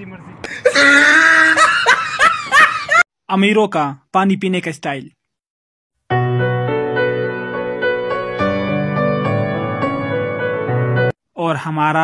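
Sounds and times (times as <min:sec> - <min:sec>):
person laughing loudly: 0:00.4 - 0:03.0.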